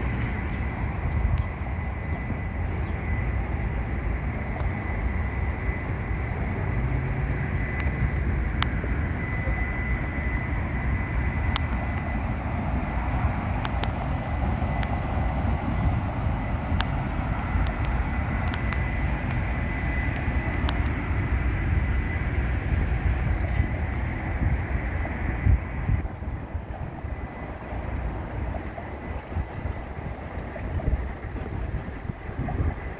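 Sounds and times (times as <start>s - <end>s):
high whine: 0.0s - 32.9s
low outdoor rumble: 0.0s - 32.9s.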